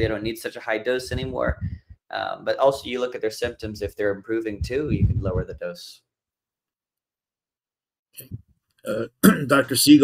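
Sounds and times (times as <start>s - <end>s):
man's throaty vocal noise: 8.2s - 9.6s.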